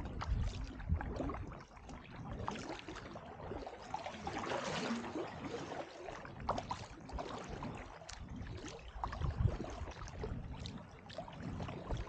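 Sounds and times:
paddle strokes through water: 0.0 - 12.0
water dripping from paddle: 0.0 - 12.0.

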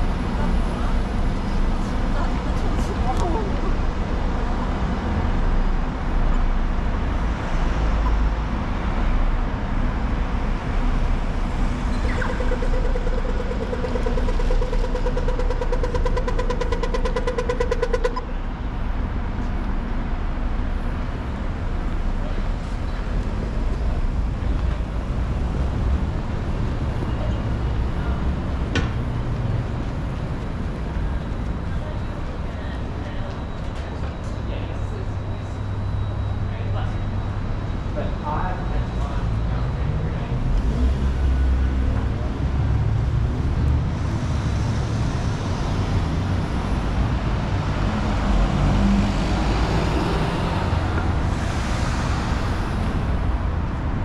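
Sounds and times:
cars passing: 0.0 - 54.0
road rumble: 0.0 - 54.0.

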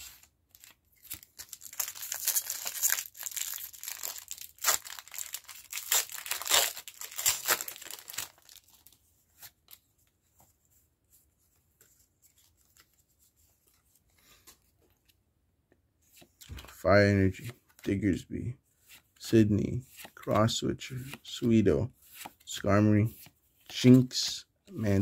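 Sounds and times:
foil pack crinkling and tearing: 0.5 - 9.0.

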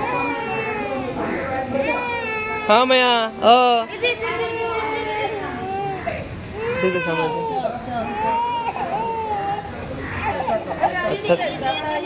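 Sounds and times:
infant crying hard: 0.0 - 1.2, 4.2 - 10.9.

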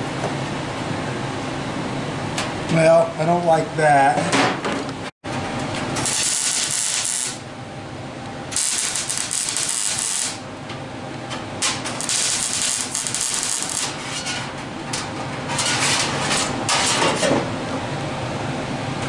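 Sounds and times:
welder arc crackling on sheet steel: 6.0 - 7.5, 8.5 - 10.4, 11.6 - 14.5, 15.4 - 17.0.

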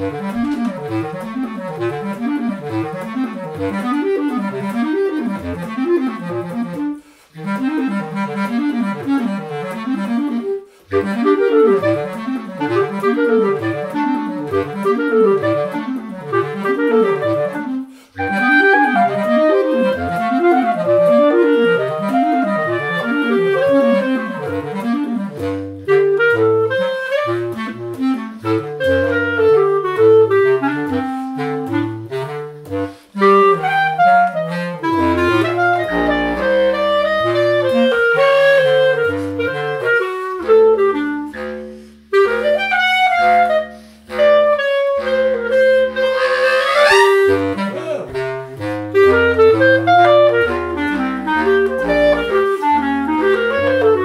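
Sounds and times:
bass clarinet low line: 0.0 - 54.0
clarinet fast runs: 0.0 - 54.0.

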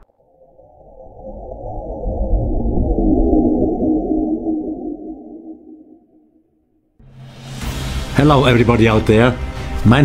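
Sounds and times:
deep cinematic drone: 0.0 - 6.5.

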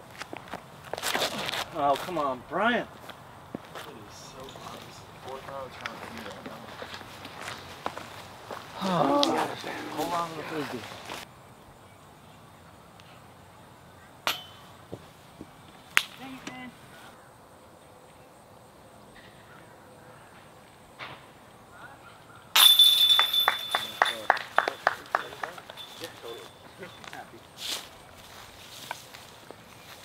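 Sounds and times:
putt striking basket chains: 14.2 - 14.8, 22.6 - 27.2.

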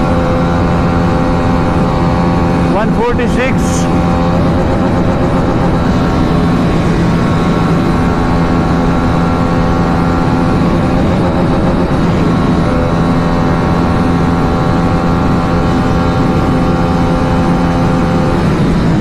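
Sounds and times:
motorcycle engine at high revs: 0.0 - 19.0.

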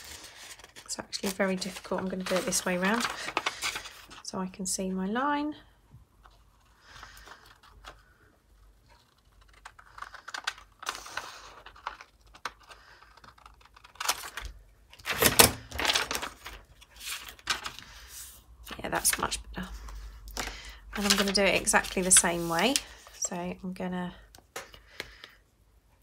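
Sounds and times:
paper rustling: 0.0 - 4.2, 6.2 - 23.3.

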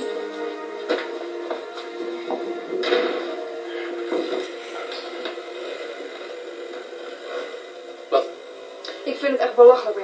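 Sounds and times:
soft tv background music: 0.0 - 10.0.

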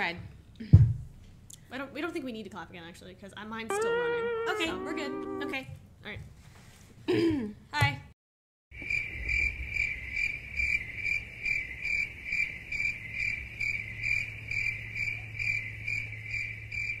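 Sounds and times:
crickets chirping: 8.8 - 17.0.

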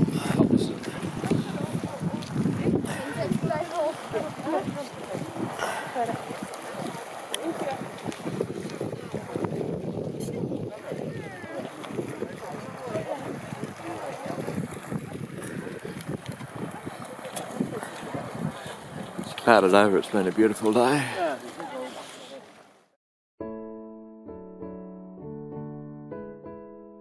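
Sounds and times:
wind rumbling on microphone: 0.0 - 20.6
people talking indistinctly: 0.0 - 22.5.

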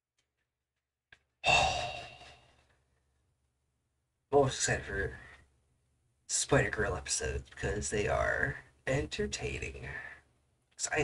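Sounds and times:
man sighing loudly: 1.4 - 2.6.

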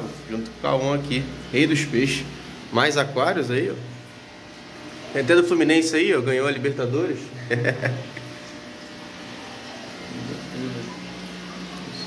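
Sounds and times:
aquarium air pumps bubbling: 0.0 - 12.0.

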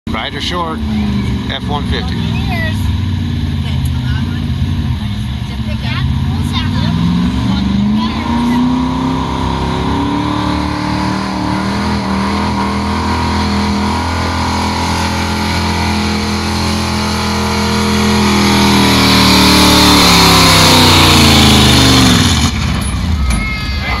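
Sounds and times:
truck engine at full throttle: 0.1 - 24.0.

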